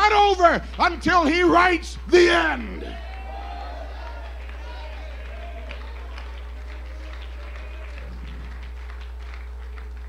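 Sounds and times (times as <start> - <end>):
low electrical hum: 0.0 - 10.0
people clapping: 0.0 - 10.0.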